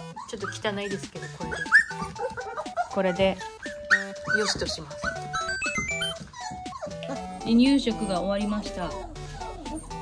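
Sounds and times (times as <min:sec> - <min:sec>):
background music: 0:00.0 - 0:10.0
puppies whimpering: 0:00.0 - 0:10.0.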